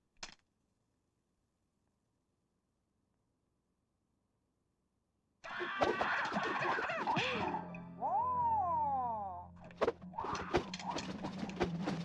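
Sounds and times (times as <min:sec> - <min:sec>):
man's high-pitched battle cry: 0:05.4 - 0:09.5.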